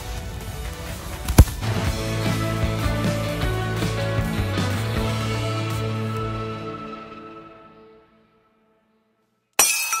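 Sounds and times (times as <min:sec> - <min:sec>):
outro music: 0:00.0 - 0:08.0
glass shattering with ringing tones: 0:09.6 - 0:10.0.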